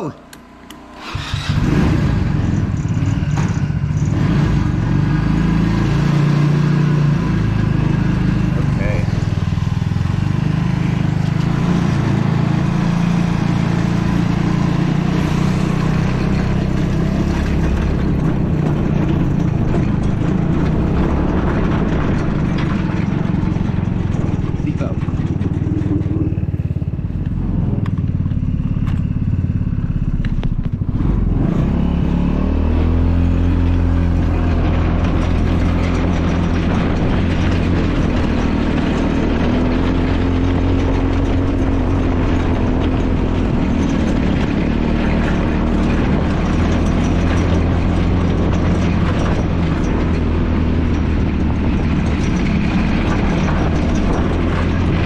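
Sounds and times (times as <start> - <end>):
go-kart engine revving: 0.0 - 55.0.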